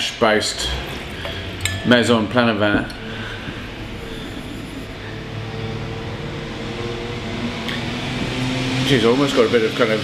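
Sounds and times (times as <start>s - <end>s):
machine humming: 0.0s - 10.0s.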